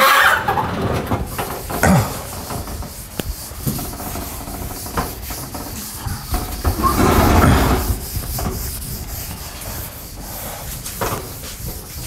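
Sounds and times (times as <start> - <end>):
cloth wiping chalkboard: 1.1 - 12.0.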